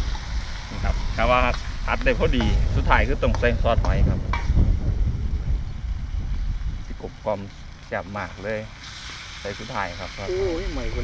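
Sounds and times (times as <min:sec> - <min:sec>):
low rumble: 0:00.0 - 0:08.4
meat sizzling in a pan: 0:07.1 - 0:11.0.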